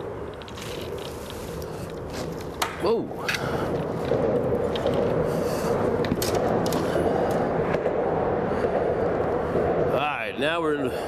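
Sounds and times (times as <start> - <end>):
rumble of car traffic on bridge: 0.0 - 11.0.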